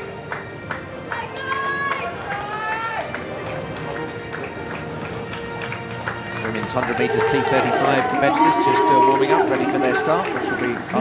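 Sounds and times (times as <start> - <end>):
music over public-address system: 0.0 - 11.0.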